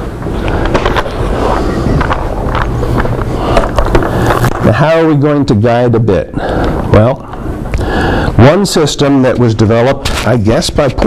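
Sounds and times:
steady low rumble: 0.0s - 10.9s.

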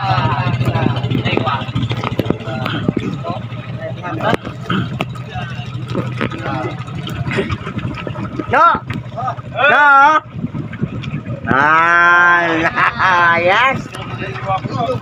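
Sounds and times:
low engine hum: 0.0s - 15.0s.

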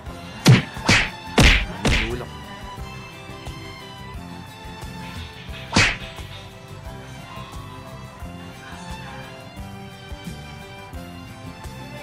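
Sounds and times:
background music: 0.0s - 12.0s
swish sound effect: 5.7s - 6.2s.

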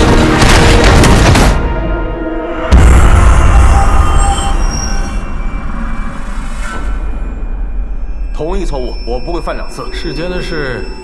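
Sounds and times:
high metallic screeching: 3.4s - 11.0s.

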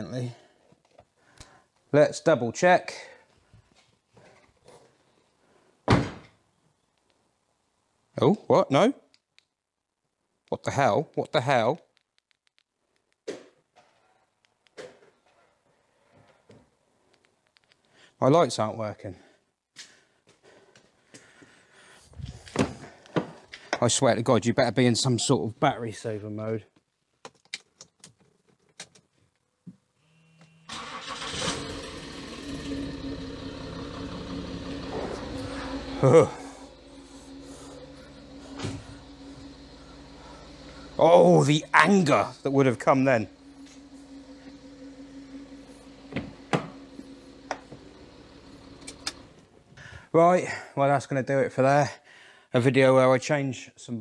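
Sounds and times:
steady hum: 31.9s - 49.8s
car door clunk: 34.8s - 35.5s, 46.1s - 46.8s.

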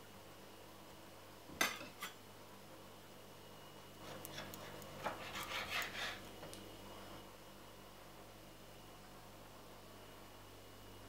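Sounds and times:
knife sawing through sandwich: 4.1s - 6.3s.

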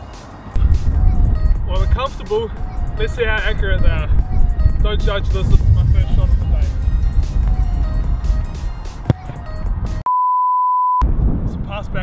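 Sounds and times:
wind rumble on microphone: 2.6s - 10.0s
football being kicked: 8.9s - 9.6s.

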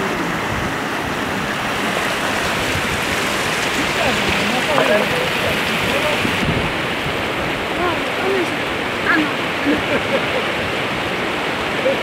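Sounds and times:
stream rushing over stones: 0.0s - 12.0s.

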